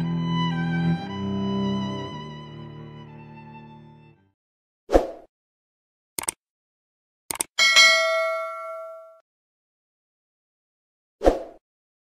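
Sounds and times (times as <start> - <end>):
double mouse click: 6.2 - 6.4, 7.3 - 7.5
notification bell ding: 7.6 - 9.2.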